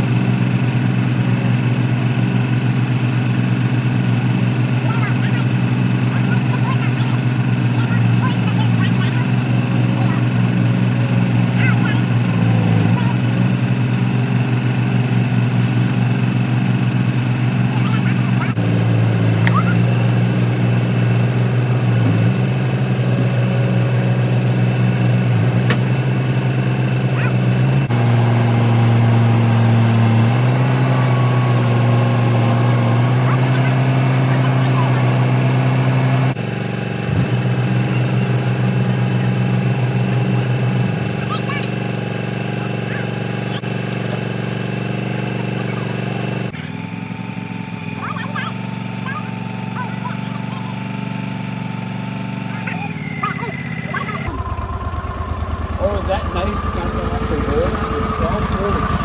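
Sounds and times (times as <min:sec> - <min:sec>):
diesel engine running: 0:00.0 - 0:59.0.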